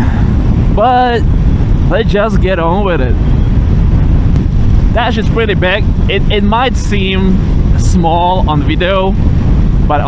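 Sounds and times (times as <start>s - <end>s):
motorcycle engine rumble: 0.0s - 10.0s
wind buffeting: 0.0s - 10.0s.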